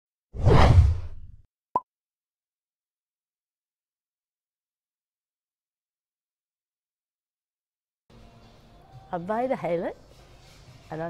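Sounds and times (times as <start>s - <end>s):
whoosh: 0.4s - 1.3s.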